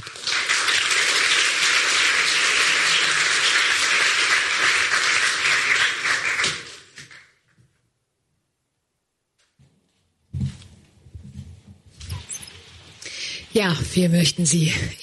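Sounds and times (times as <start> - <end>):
audience applauding: 0.0 - 7.3.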